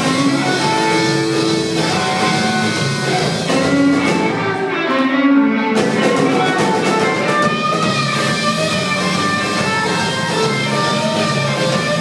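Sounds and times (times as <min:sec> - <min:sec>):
electric guitar lead: 0:00.0 - 0:12.0
rock band playing: 0:00.0 - 0:12.0.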